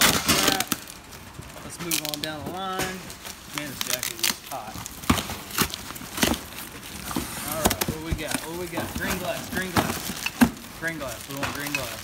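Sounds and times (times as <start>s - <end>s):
cardboard box tape ripping: 0.0s - 1.0s, 1.8s - 11.7s.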